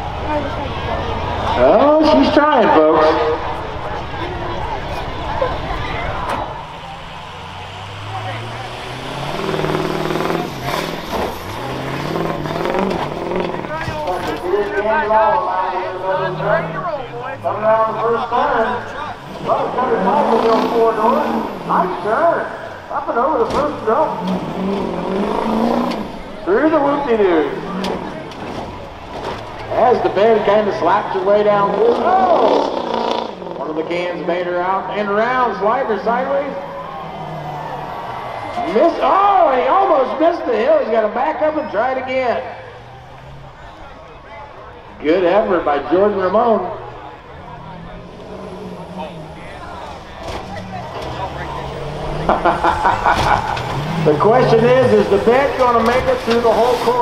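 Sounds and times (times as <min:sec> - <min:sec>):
mix of voices: 0:00.0 - 0:57.0
truck engine revving: 0:00.0 - 0:57.0.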